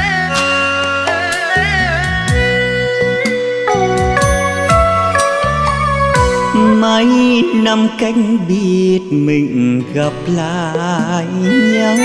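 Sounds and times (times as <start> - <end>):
band accompaniment: 0.0 - 8.6
man singing slow melody: 6.5 - 12.0.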